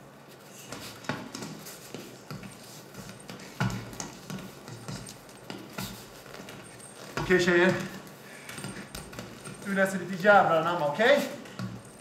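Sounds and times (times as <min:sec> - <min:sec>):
boxing gloves thudding and slapping: 0:00.7 - 0:09.8.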